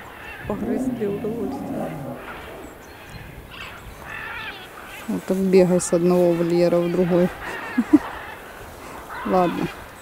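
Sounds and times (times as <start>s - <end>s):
bird calling: 0.0s - 4.9s.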